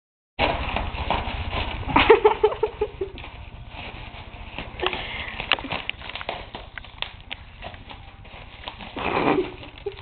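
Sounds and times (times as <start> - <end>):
bubble wrap crinkling and popping: 0.4 - 10.0.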